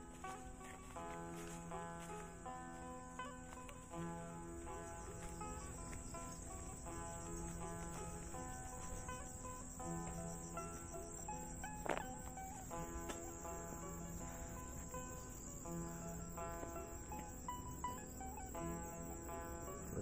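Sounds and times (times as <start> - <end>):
high-pitched insect chorus: 0.0 - 20.0
music of held notes: 0.0 - 20.0.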